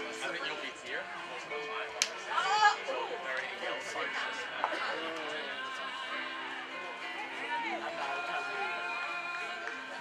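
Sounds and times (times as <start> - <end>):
faint background music: 0.0 - 10.0
people's voices: 0.0 - 10.0.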